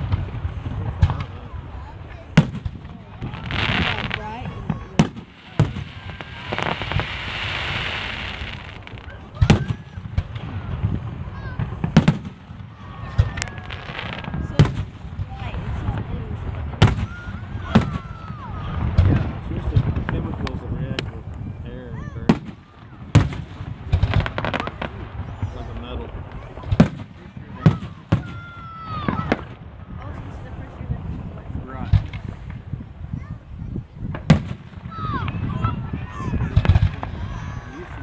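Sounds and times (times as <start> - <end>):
fireworks booming: 0.0 - 38.0
fireworks crackling and hissing: 0.0 - 38.0.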